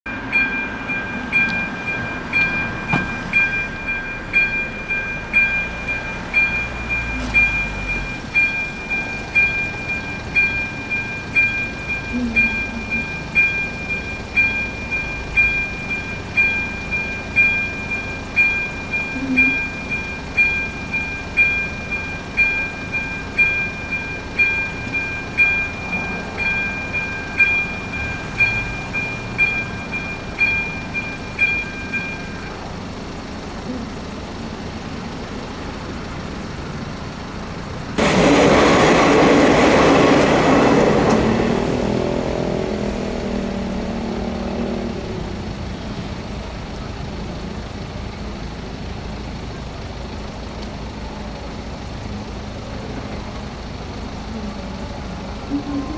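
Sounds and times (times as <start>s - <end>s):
level crossing warning bell: 0.1s - 55.9s.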